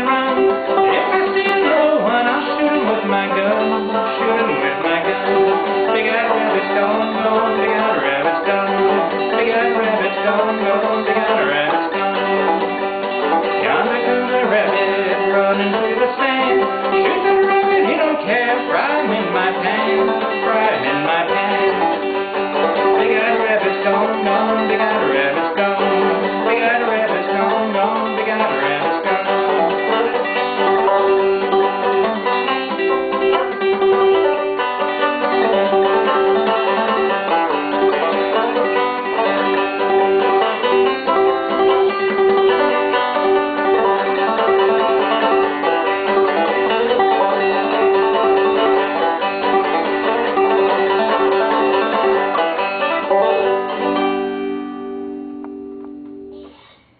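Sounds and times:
banjo plucking: 0:00.0 - 0:56.7.

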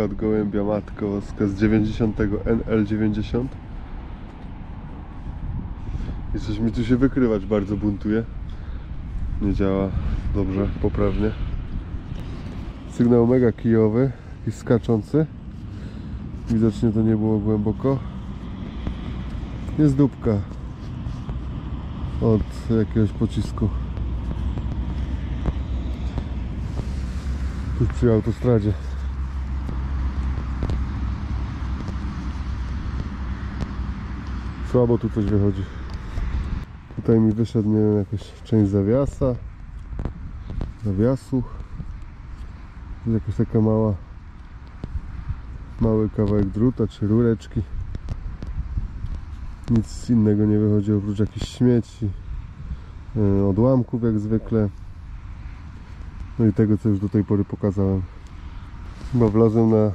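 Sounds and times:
motorway traffic rumble: 0:00.0 - 0:59.9.

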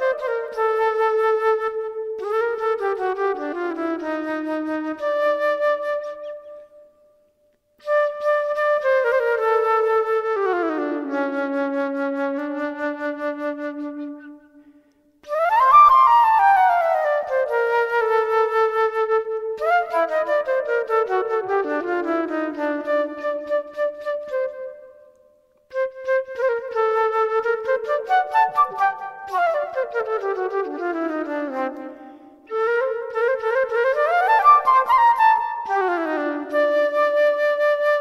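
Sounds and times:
solo flute improvising: 0:00.0 - 0:38.0.

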